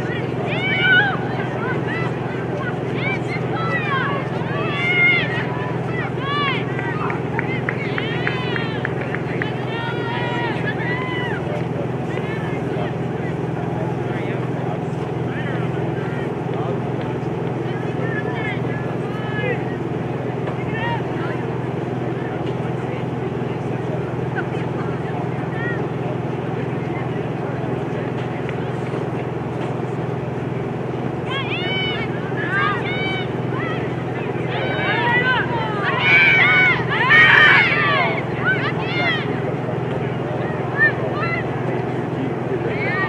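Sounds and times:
distant players shouting: 0.0s - 43.0s
low mechanical hum: 0.0s - 43.0s.

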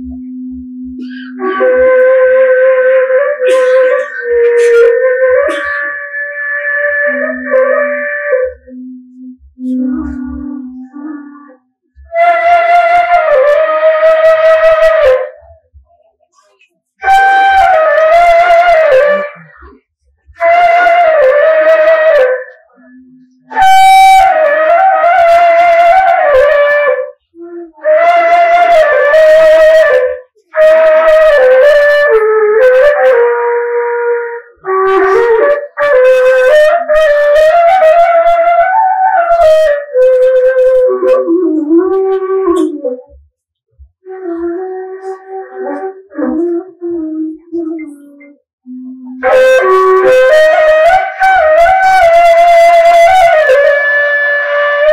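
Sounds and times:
pipe flute notes: 0.0s - 43.2s, 44.0s - 54.9s.

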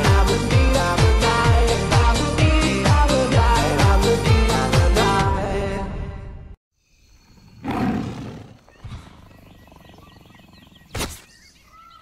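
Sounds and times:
faint chirping birdsong: 6.8s - 12.0s.

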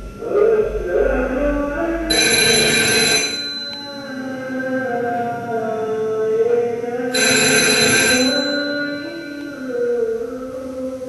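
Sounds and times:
sustained low tones: 0.0s - 2.5s
bright bell ringing: 2.1s - 4.5s, 7.2s - 9.9s.

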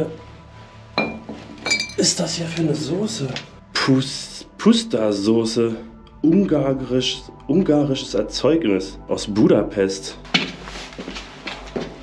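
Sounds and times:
glass bottles clinking: 1.0s - 2.2s.

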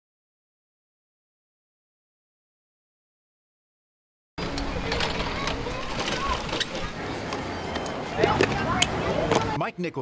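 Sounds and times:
distant voices: 4.4s - 9.6s.

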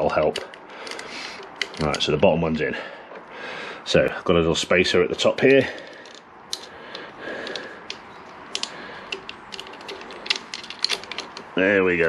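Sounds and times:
small metal parts clicking: 0.0s - 2.1s, 5.5s - 11.6s.

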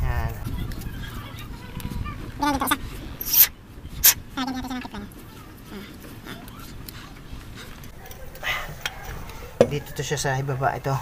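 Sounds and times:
tape pulled off roll hissing: 3.2s - 4.2s.

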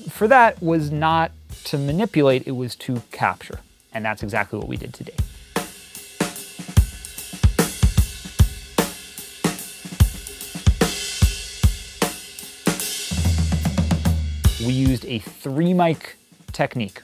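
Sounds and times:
hi-hat and cymbal wash: 0.0s - 17.0s
drum fill with heavy low end: 0.2s - 2.2s, 13.1s - 15.2s.

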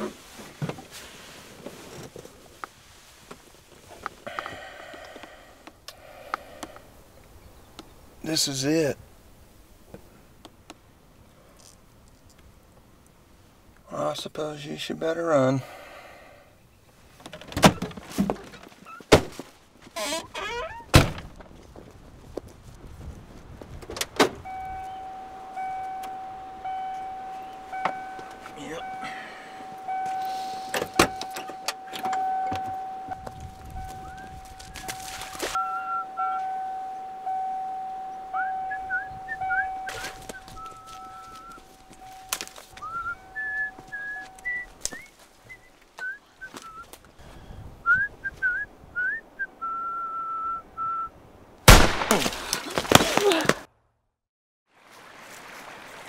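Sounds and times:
truck door warning chime: 24.4s - 45.1s
short high chirps: 24.5s - 45.1s.

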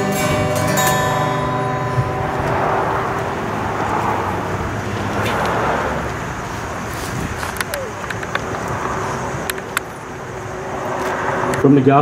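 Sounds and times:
acoustic guitar chord ringing: 0.0s - 5.0s
car passing: 0.0s - 12.0s.

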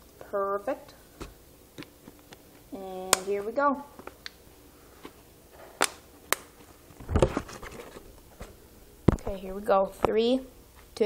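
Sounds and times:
rustling bump: 7.0s - 8.6s.

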